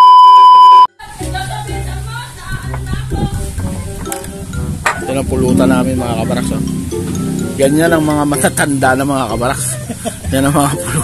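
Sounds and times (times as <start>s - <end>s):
high test-tone beep: 0.0s - 0.9s.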